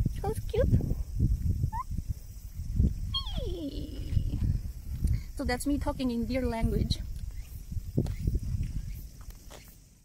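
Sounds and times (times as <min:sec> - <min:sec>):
woman imitating deer call: 0:03.2 - 0:04.4.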